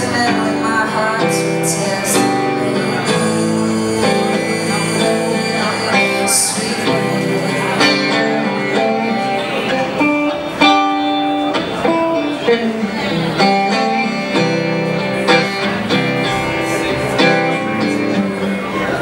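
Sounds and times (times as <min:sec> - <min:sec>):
electric guitar playing: 0:00.0 - 0:19.0.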